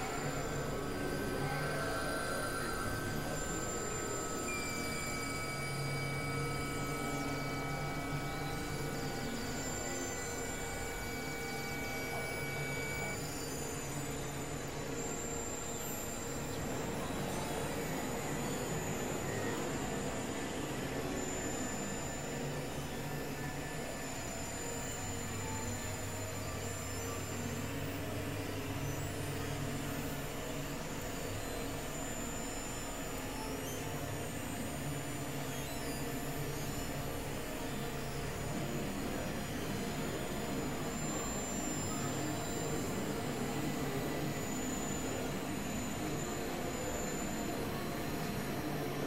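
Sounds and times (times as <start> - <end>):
electronic noise drone: 0.0 - 49.0
thin high whine: 0.0 - 49.0.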